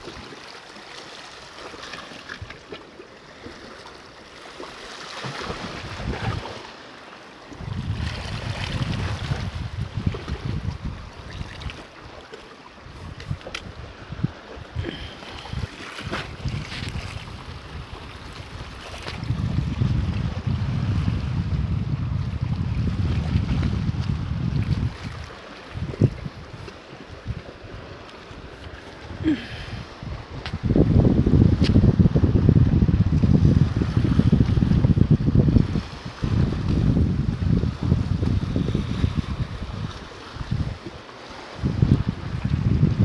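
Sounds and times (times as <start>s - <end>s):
water lapping against rocks: 0.0s - 21.2s, 22.2s - 31.9s, 32.9s - 43.0s
wind buffeting microphone: 5.4s - 6.6s, 7.5s - 11.8s, 12.8s - 43.0s.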